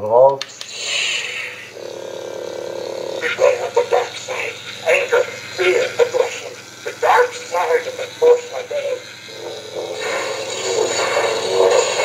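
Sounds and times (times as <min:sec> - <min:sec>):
steady electronic hum: 0:00.0 - 0:12.0
toy speaker hiss: 0:00.4 - 0:12.0
recorded voice speaking: 0:03.2 - 0:12.0.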